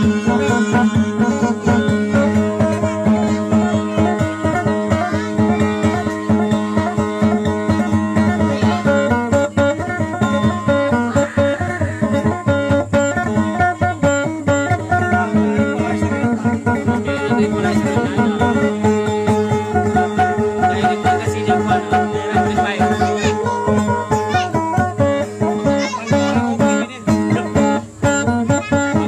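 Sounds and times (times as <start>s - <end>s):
acoustic guitar picked fast: 0.0s - 29.0s.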